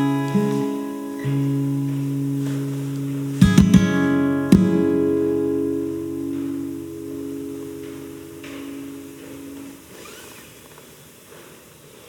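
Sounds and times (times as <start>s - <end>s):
acoustic guitar chord ringing: 0.0s - 10.0s
faint room noise: 0.0s - 12.0s.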